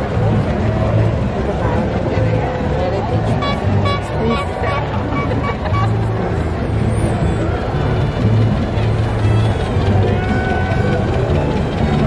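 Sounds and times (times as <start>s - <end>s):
crowd chatter: 0.0s - 12.0s
low engine rumble: 0.0s - 12.0s
car horn tooting: 3.2s - 6.2s.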